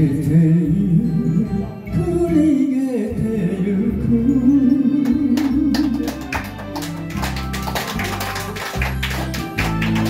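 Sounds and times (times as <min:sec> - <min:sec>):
instrumental karaoke backing track: 0:00.0 - 0:10.0.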